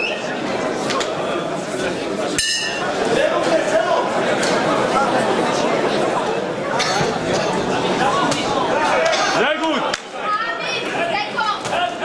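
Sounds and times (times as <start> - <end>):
boxing ring bell ringing: 2.4 - 2.8.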